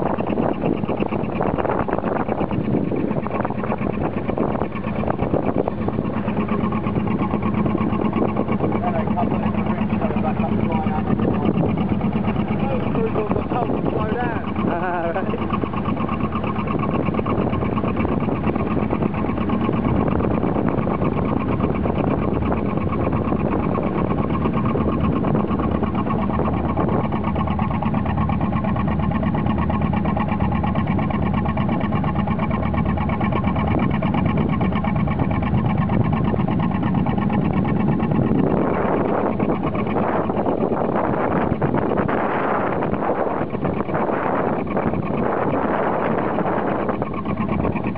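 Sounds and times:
boat engine running: 0.0 - 47.9
voices: 8.1 - 15.9.

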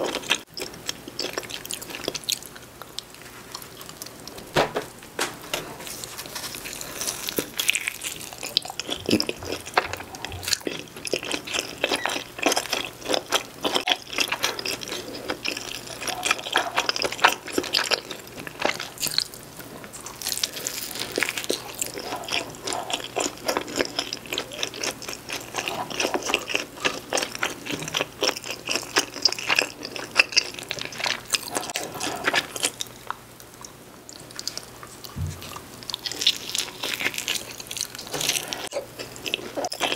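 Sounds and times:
pizza biting and chewing: 5.8 - 39.9.

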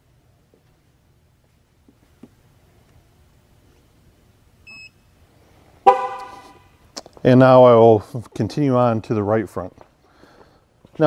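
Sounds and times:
car horn chirp: 5.8 - 6.7.

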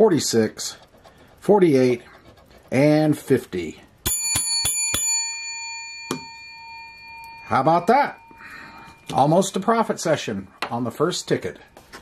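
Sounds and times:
small metal bell ringing: 4.0 - 9.9.

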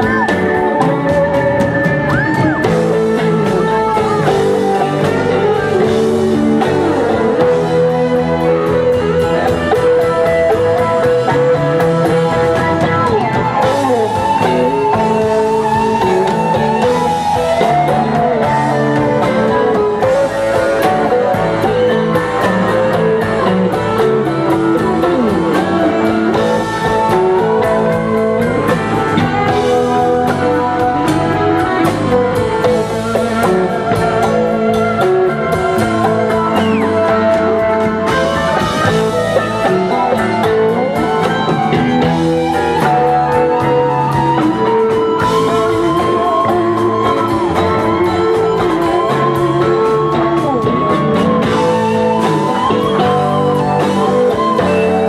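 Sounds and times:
electric guitar lead line: 0.0 - 55.0
live rock band playing: 0.0 - 55.0.

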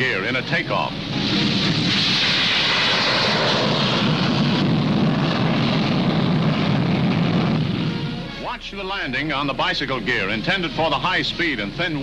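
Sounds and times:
jet engines roaring: 0.0 - 12.0.

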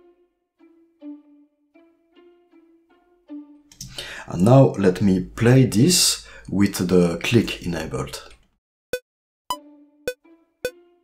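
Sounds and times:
man talking: 4.0 - 8.4
string notes repeated: 9.5 - 11.0.

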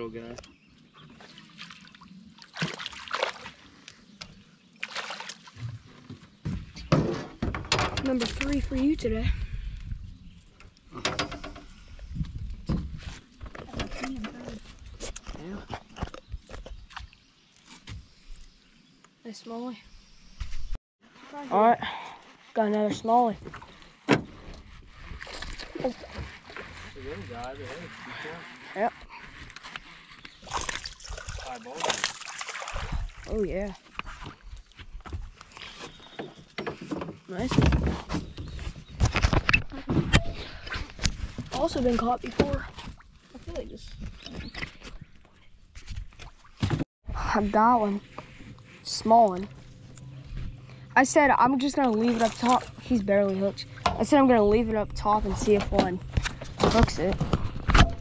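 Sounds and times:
fish splashing in water: 1.4 - 3.6, 4.8 - 5.6, 30.4 - 33.2
fish splashing at water surface: 30.4 - 33.2.

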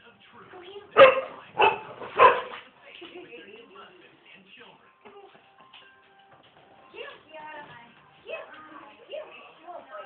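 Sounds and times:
dog barking: 1.0 - 2.6.

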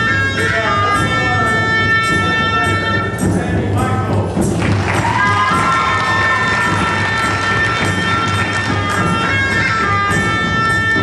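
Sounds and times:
hand drums and timbales: 0.0 - 11.0
reedy horn melody: 0.0 - 11.0.

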